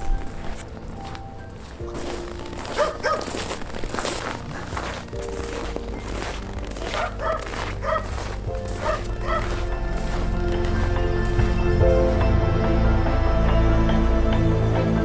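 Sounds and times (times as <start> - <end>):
footsteps crunching in snow: 0.0 - 12.4
background music: 0.0 - 15.0
dog barking: 2.7 - 3.4, 6.8 - 8.1, 8.8 - 9.6.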